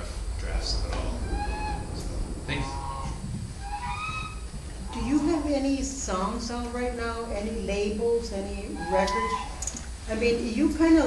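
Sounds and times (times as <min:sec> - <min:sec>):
low rumble of room noise: 0:00.0 - 0:11.0
fowl calling: 0:01.2 - 0:05.5, 0:08.6 - 0:09.7.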